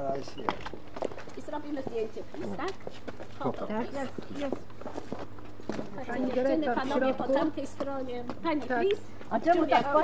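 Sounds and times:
footsteps on paving stones: 0.5s - 10.0s.

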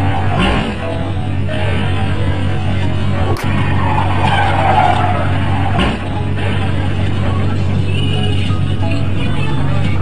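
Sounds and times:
vehicle skidding: 0.0s - 7.5s
road traffic noise: 0.0s - 10.0s.

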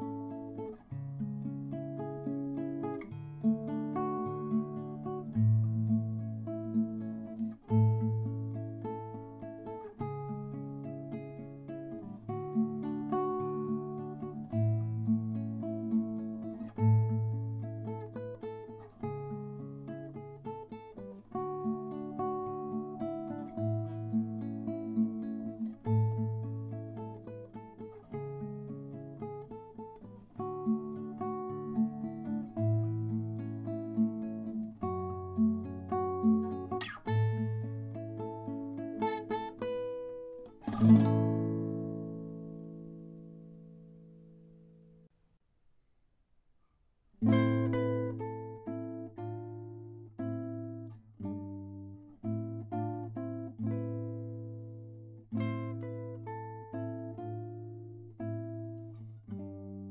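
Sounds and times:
classical guitar fingerpicking: 0.0s - 45.2s, 47.2s - 59.9s.

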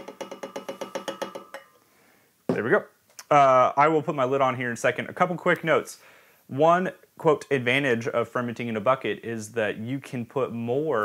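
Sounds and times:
faint steady ringing tone: 0.0s - 2.0s.

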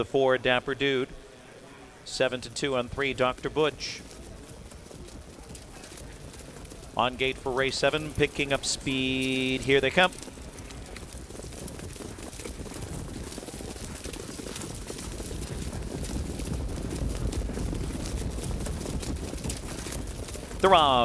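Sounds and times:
rumble of harness horses: 0.9s - 21.0s.

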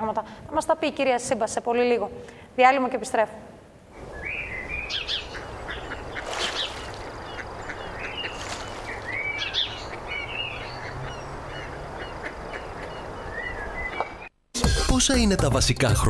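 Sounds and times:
birds chirping: 4.0s - 14.4s.

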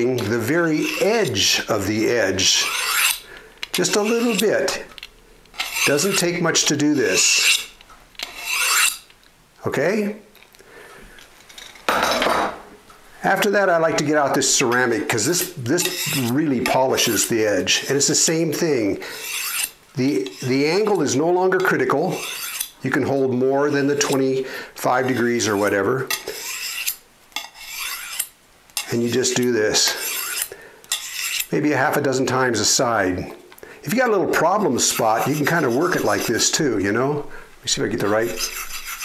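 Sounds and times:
knife scraping on honing rod: 0.0s - 9.1s, 14.4s - 24.3s, 25.0s - 31.5s, 34.4s - 36.6s, 38.0s - 39.0s.

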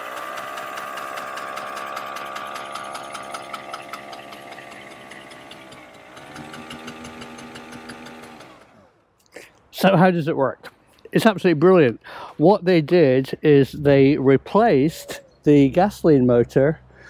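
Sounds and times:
electric motor whining: 0.0s - 9.0s.

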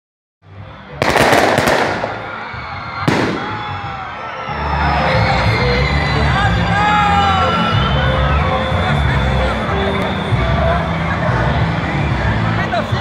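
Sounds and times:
firework bang: 1.0s - 2.4s, 3.0s - 3.8s
fireworks crackling pops: 1.0s - 2.4s, 3.0s - 3.8s.

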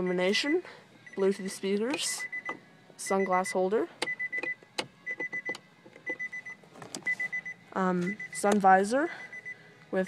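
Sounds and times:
car warning chime beeps: 0.0s - 9.7s.

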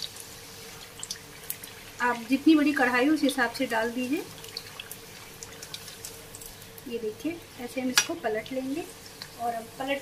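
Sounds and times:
small crackles: 0.0s - 2.2s, 4.4s - 6.9s
dough sizzling in oil: 0.0s - 10.0s.

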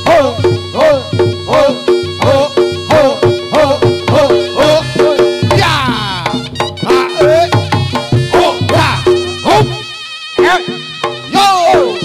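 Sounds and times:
drum strokes: 0.0s - 12.0s
shawm holding high note: 0.0s - 12.0s.

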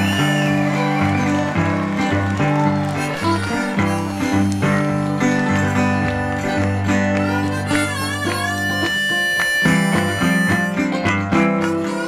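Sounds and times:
blues guitar playing: 0.0s - 12.0s.

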